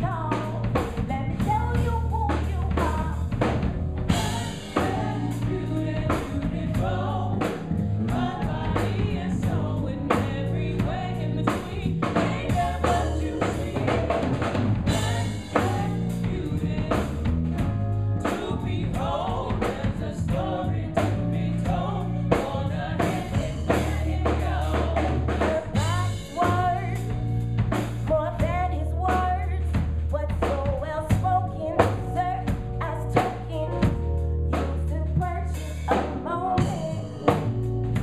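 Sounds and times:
bass guitar: 0:00.0 - 0:38.0
drum kit: 0:00.0 - 0:38.0
keyboard: 0:00.0 - 0:38.0.

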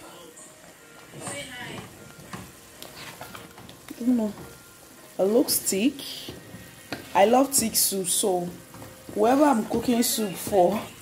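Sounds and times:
spoon stirring thick soup: 0:02.1 - 0:04.6.

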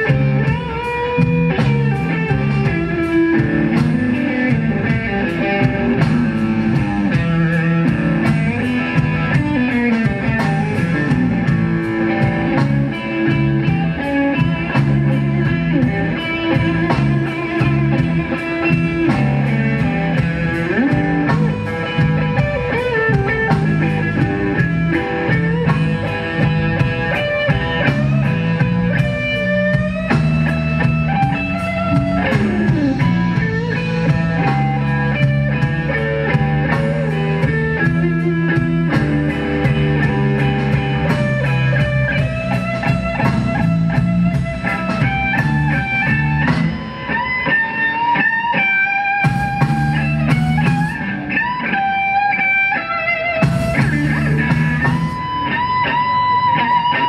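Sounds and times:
blues band playing instrumental: 0:00.0 - 0:57.0.

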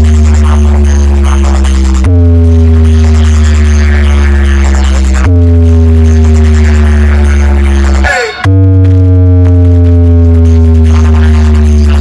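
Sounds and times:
loud deep bass notes: 0:00.0 - 0:12.0.

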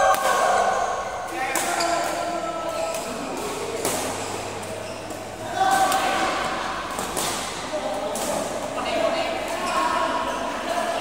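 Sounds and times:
voices in a sports hall: 0:00.0 - 0:11.0
racket hitting shuttlecock: 0:02.9 - 0:04.4, 0:05.1 - 0:08.6.

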